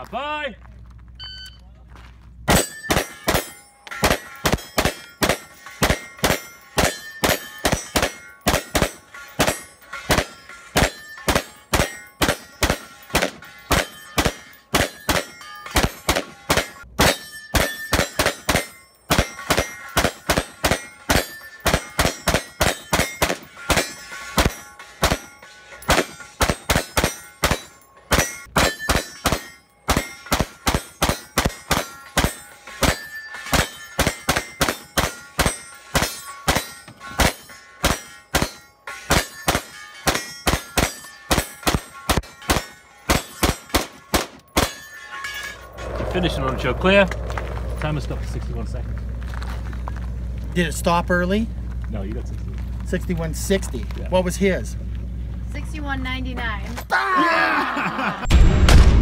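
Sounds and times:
steel target clanging: 2.5s - 51.5s.

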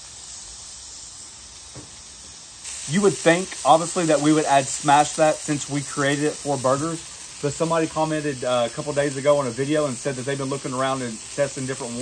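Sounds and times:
burger patties sizzling on griddle: 0.0s - 12.0s.

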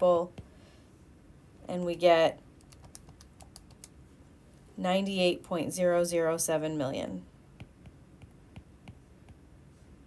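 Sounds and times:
woman speaking: 0.0s - 0.3s, 1.6s - 2.4s, 4.8s - 7.3s.

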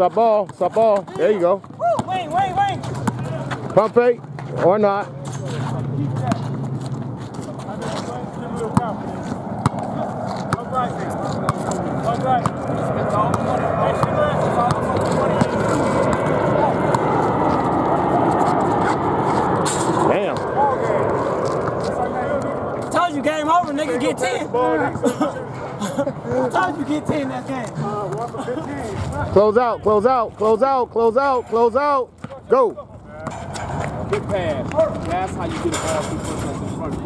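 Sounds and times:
voices talking and calling out: 0.0s - 37.0s
basketball bouncing on asphalt: 0.4s - 4.6s, 6.1s - 7.6s, 8.6s - 17.1s, 32.1s - 35.1s.

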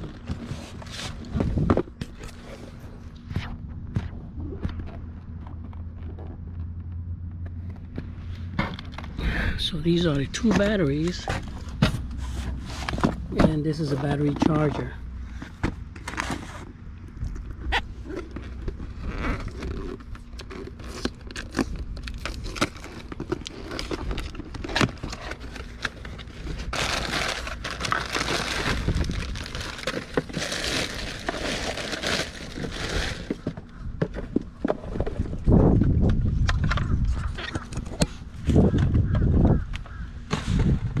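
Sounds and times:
boxes and packaging handled: 0.0s - 7.0s, 7.6s - 39.2s
packaging crinkling and rustling: 15.9s - 33.7s.

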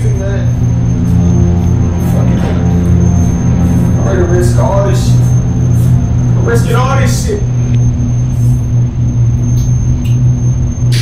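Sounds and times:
low bass drone: 0.0s - 11.0s
thin steady high tone: 0.0s - 11.0s.

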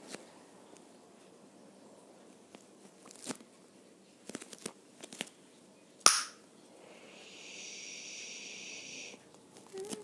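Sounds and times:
faint clicks and crinkles: 2.2s - 5.6s, 9.2s - 10.0s
steady high hiss: 6.0s - 10.0s
loud sharp snap: 6.1s - 6.4s.

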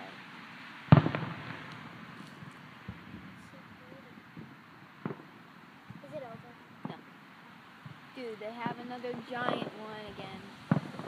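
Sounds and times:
firework bang: 0.9s - 6.1s, 6.8s - 7.1s, 8.6s - 11.0s.

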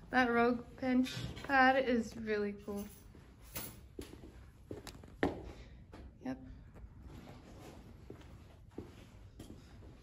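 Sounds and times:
soft footsteps on rubber flooring: 3.9s - 10.0s.

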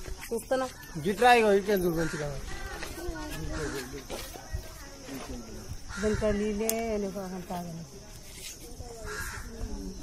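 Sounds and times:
faint voices: 1.7s - 10.0s
harsh bird caw: 1.9s - 2.4s, 3.5s - 4.0s, 5.8s - 6.4s, 9.0s - 9.6s.

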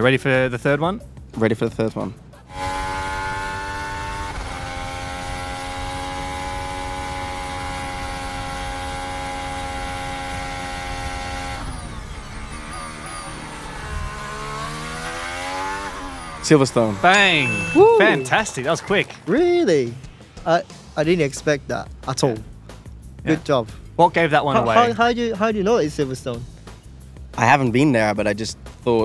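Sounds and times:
racing car engine at high revs: 2.4s - 19.2s.

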